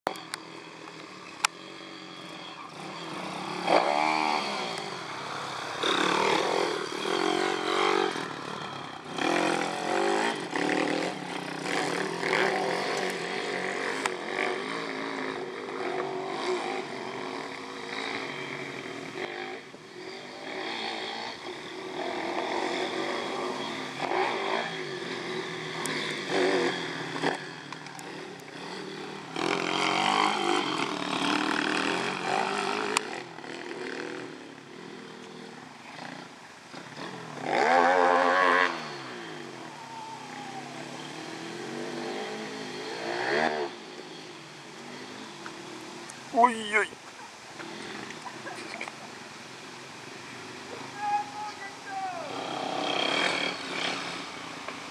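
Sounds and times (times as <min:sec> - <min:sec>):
motorbike passing close: 0:00.1 - 0:54.9
pit bike engines revving: 0:00.1 - 0:54.9.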